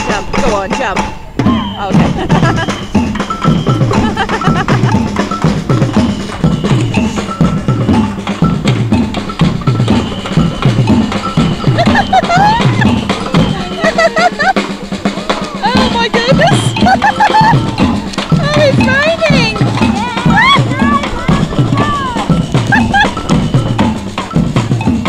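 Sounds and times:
bass drum beat: 0:00.0 - 0:25.0
samba band drumming: 0:00.0 - 0:25.0
voices talking and laughing: 0:01.6 - 0:24.8.

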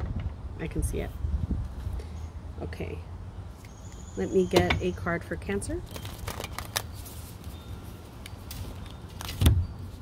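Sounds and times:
cards rustling and tapping: 0:05.9 - 0:07.6.

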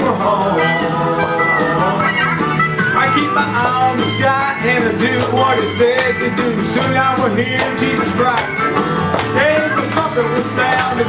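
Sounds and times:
country gospel music over loudspeaker: 0:00.0 - 0:11.0.

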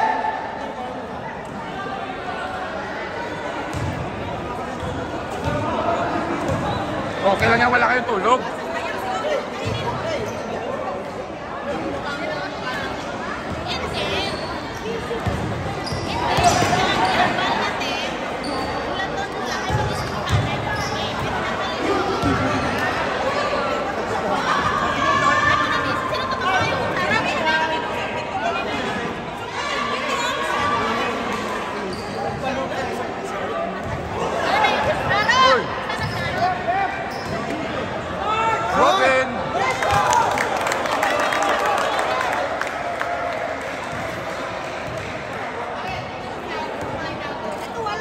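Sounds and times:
people calling out and chattering: 0:00.0 - 0:48.0.

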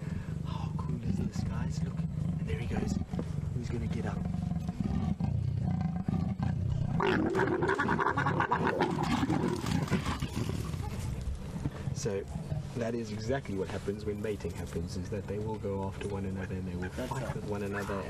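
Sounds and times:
leopards growling: 0:00.0 - 0:18.0
leopard snarling growl: 0:00.3 - 0:11.0.

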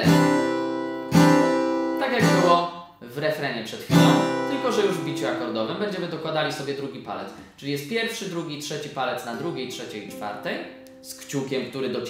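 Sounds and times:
acoustic guitar chord strummed: 0:00.0 - 0:02.6, 0:03.9 - 0:05.8, 0:09.4 - 0:11.7.

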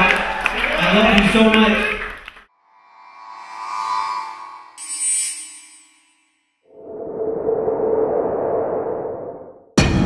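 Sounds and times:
rushing whoosh: 0:06.7 - 0:09.8.

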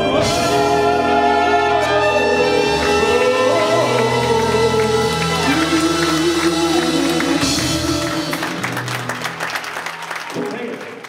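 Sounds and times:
live blues band playing: 0:00.0 - 0:09.7
audience applause: 0:02.8 - 0:11.0.

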